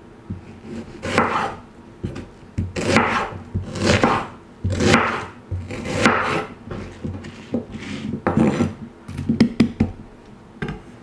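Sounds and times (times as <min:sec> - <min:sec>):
knife slicing onion on board: 0:00.3 - 0:10.0.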